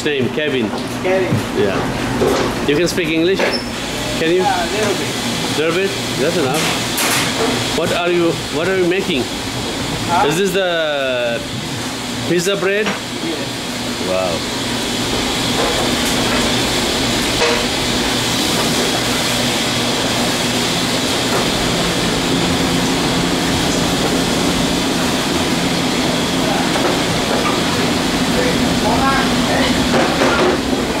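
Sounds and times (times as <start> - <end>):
kitchen machinery hum: 0.0 - 31.0.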